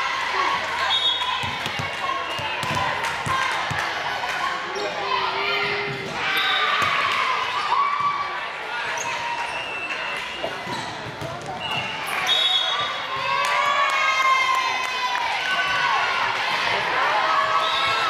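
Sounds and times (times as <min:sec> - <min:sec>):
cheering: 0:00.0 - 0:10.6, 0:11.7 - 0:18.0
players calling and shouting: 0:00.0 - 0:18.0.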